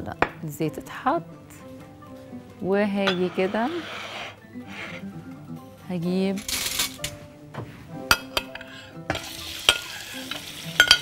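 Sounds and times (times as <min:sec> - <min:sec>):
metal spoon clinking on plate: 0:08.1 - 0:11.0
shrimp sizzling in oil: 0:09.1 - 0:11.0.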